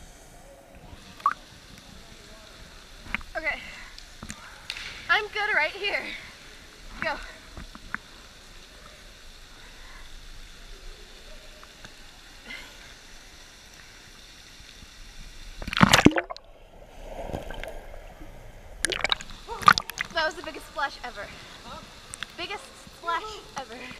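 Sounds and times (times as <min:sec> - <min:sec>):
muffled water sound: 0:13.2 - 0:20.3
loud splash into water: 0:18.8 - 0:20.1.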